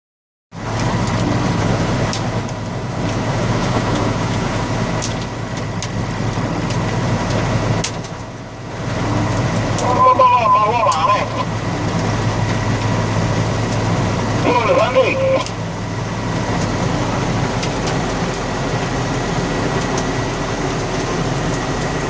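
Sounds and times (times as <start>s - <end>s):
tractor engine running: 0.5s - 22.0s
rain and hail on cab: 0.6s - 22.0s.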